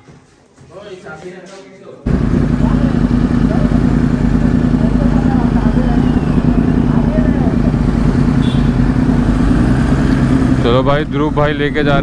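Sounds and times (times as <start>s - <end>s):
motorcycle engines running low: 2.1s - 12.0s.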